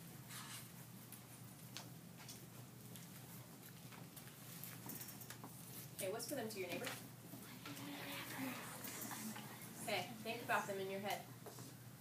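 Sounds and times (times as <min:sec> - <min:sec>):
low room hum: 0:00.0 - 0:12.0
marker squeaking on whiteboard: 0:07.4 - 0:10.0.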